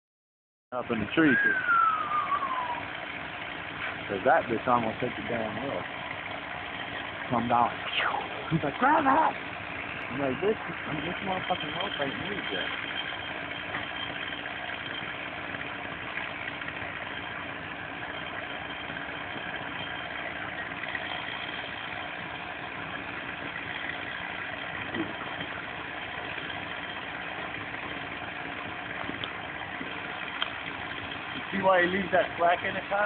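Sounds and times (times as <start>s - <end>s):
engine idling: 0.7s - 33.0s.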